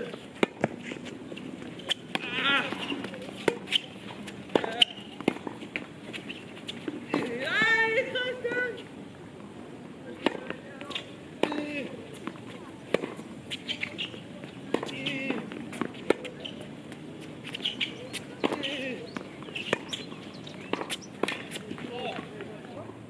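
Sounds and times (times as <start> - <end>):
tennis ball bouncing: 0.0 - 8.0, 10.2 - 22.4
tennis ball hitting racquet: 0.0 - 8.0, 10.2 - 22.4.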